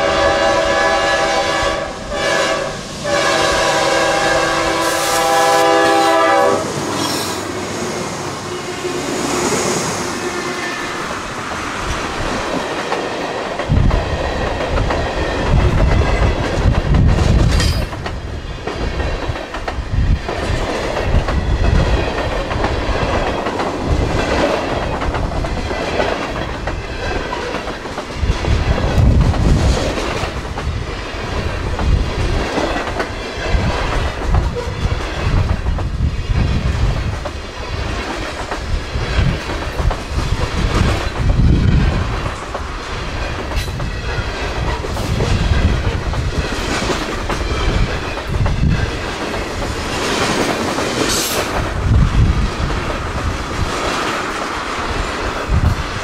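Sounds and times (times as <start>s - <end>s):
heavy train rumble: 0.0s - 56.0s
train wheels clattering over joints: 12.3s - 56.0s.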